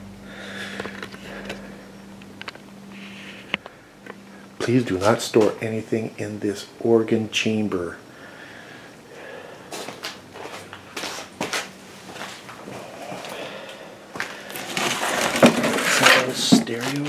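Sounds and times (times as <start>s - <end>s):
knocks clicks and scraping of wood: 14.5s - 17.0s.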